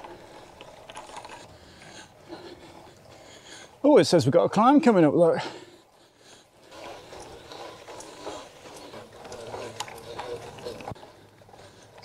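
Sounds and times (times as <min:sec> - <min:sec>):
bike clicks and rattles: 0:00.0 - 0:03.6, 0:06.2 - 0:12.0
bike tyres on grass: 0:00.0 - 0:12.0.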